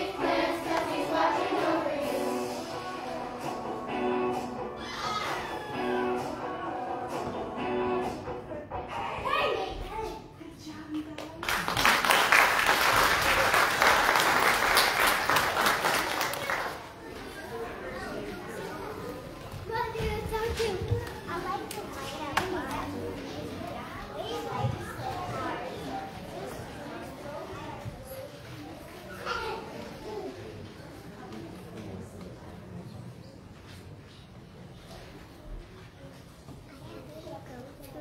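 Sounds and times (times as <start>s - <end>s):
children's voices: 0.0s - 10.8s, 13.3s - 32.4s, 33.7s - 38.0s.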